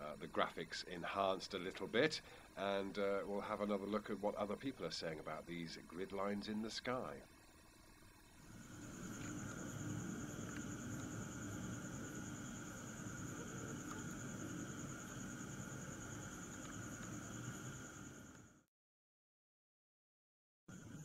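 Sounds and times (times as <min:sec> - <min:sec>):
crickets trilling: 0:00.0 - 0:18.6, 0:20.7 - 0:21.0
low outdoor rumble: 0:08.3 - 0:18.4.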